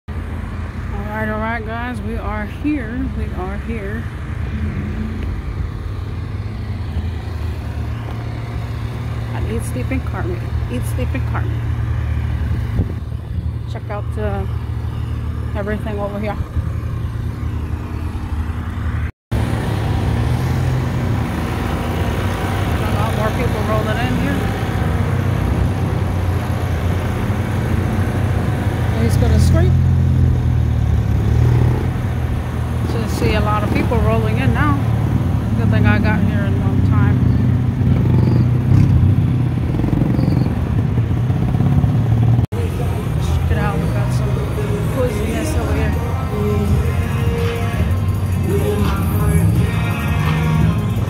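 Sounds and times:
car engine idling: 0:00.1 - 0:31.3, 0:40.6 - 0:51.0.

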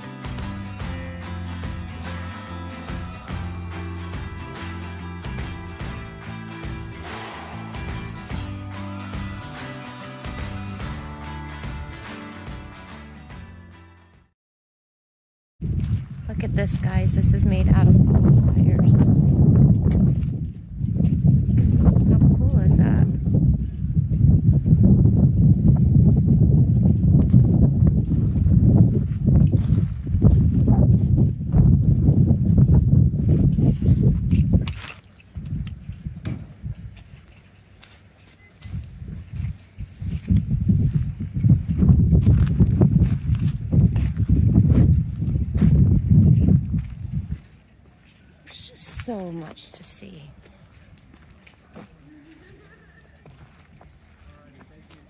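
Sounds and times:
wind buffeting microphone: 0:15.6 - 0:37.3, 0:38.6 - 0:49.2.

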